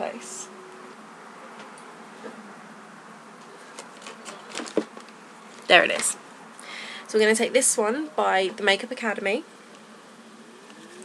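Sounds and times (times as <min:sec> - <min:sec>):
microphone hiss: 0:00.0 - 0:11.0
makeup items clicking and rustling: 0:03.7 - 0:06.2.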